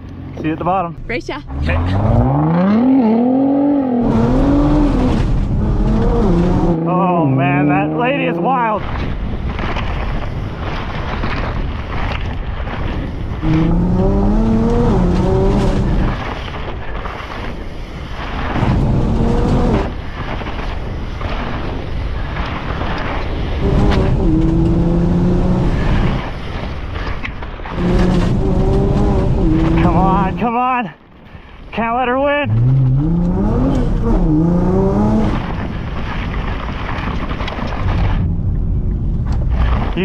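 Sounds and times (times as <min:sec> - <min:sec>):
wind and tyre noise: 0:00.0 - 0:40.0
car engine accelerating: 0:00.1 - 0:08.5, 0:13.4 - 0:16.3, 0:18.6 - 0:19.9, 0:23.6 - 0:26.3, 0:27.7 - 0:30.4, 0:32.4 - 0:35.8.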